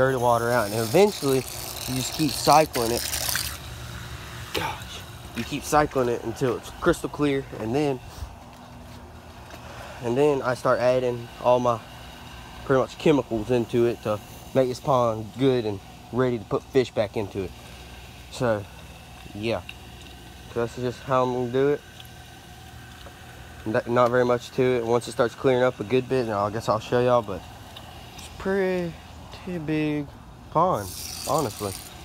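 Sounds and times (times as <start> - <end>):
hose spraying into pond water: 0.0 - 8.2, 9.6 - 32.0.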